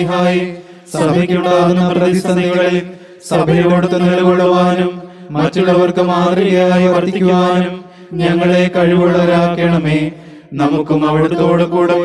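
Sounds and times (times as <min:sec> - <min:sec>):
man chanting a prayer: 0:00.0 - 0:12.0.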